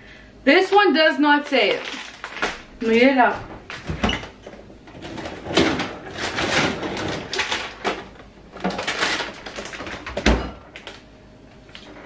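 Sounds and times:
plastic bag rustling: 0:01.6 - 0:11.0.

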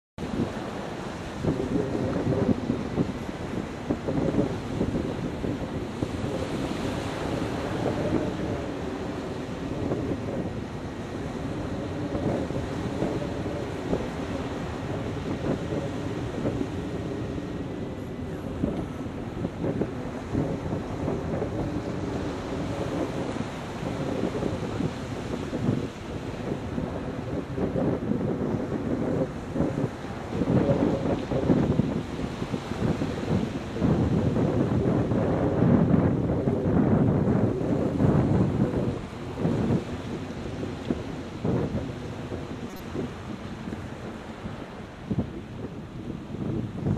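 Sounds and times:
surf rushing: 0:00.2 - 0:46.9
wind buffeting microphone: 0:00.2 - 0:46.9.

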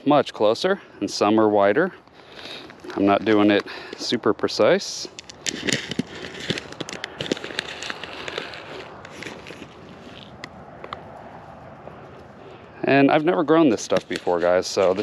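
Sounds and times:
hand rummaging through seeds: 0:04.9 - 0:10.4
paper seed packet rustling: 0:04.9 - 0:10.5, 0:13.1 - 0:15.0.

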